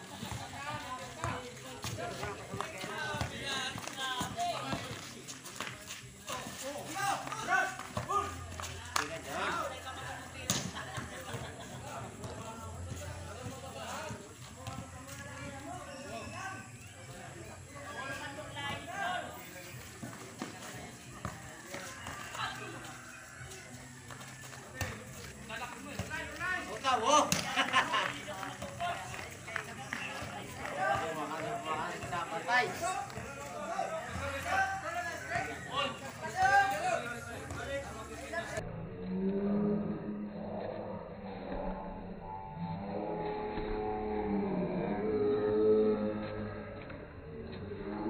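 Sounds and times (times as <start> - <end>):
footsteps on concrete court: 0.0 - 38.6, 46.7 - 47.6.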